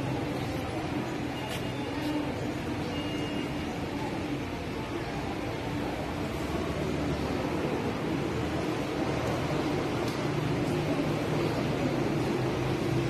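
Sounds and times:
busy hall background noise: 0:00.0 - 0:13.0.

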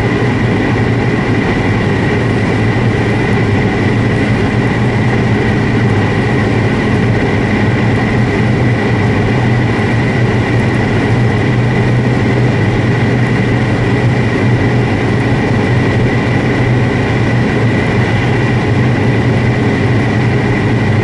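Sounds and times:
car engine droning at high revs: 0:00.0 - 0:21.0.

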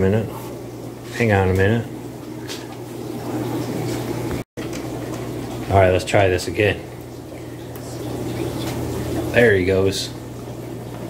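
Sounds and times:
aquarium air pumps humming: 0:00.0 - 0:11.0.

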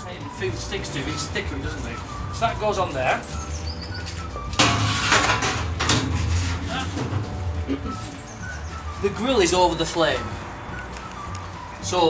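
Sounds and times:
metal grill grate scraping: 0:00.6 - 0:10.4.

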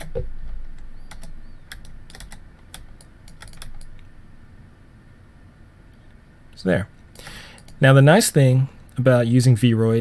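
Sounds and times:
computer keyboard clicks: 0:01.1 - 0:04.0, 0:07.6 - 0:07.8.

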